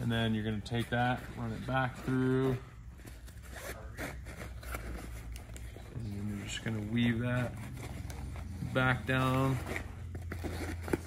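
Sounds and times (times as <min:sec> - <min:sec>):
strap rustling and scraping: 0:00.0 - 0:11.0.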